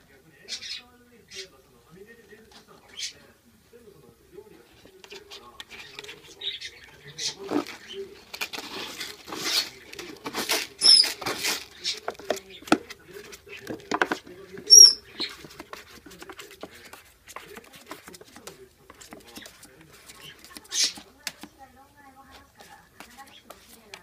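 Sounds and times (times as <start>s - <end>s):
kitten digging in cat litter: 6.9s - 24.0s
kitten squeaks: 10.8s - 11.2s, 14.7s - 15.3s.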